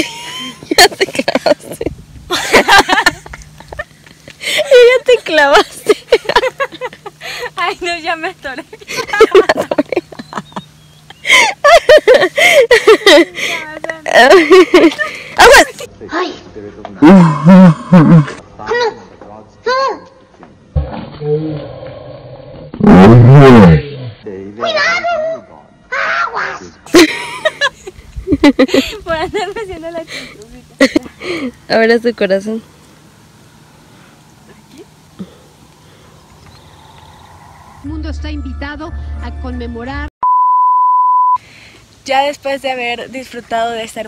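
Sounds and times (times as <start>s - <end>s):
electronic censor beep: 40.2s - 41.4s
faint hiss: 41.4s - 44.0s.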